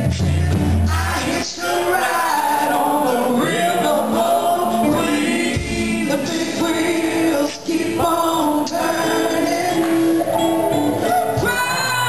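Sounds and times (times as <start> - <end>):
woman singing: 11.4 - 12.0.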